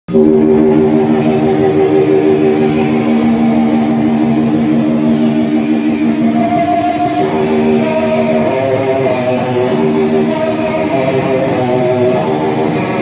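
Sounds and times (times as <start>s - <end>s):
distorted electric guitar chord: 0.1s - 13.0s.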